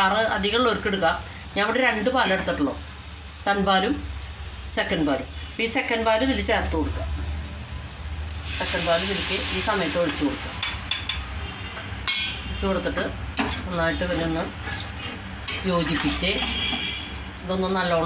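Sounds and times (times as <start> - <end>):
fish sizzling in a pan: 0.0 - 11.0
spatula stirring in a pan: 13.4 - 17.4.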